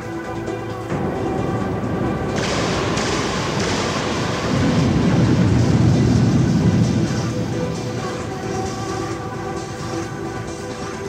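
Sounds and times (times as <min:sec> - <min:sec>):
beat-driven dance music: 0:00.0 - 0:11.0
dense noise with held tones: 0:00.0 - 0:11.0
deep low rumble: 0:00.9 - 0:09.8.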